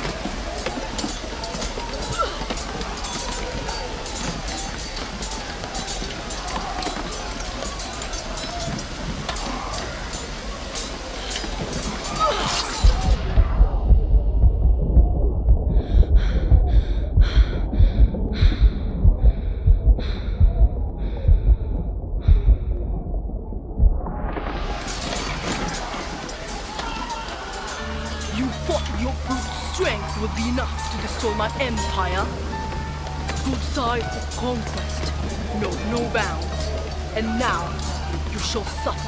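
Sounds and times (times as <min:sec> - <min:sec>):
faint voices: 0:00.0 - 0:13.2, 0:25.0 - 0:39.0
hissing atmospheric layer: 0:00.0 - 0:14.3, 0:24.0 - 0:39.0
running footfalls: 0:00.0 - 0:14.6
deep heartbeat thumps: 0:12.8 - 0:24.8.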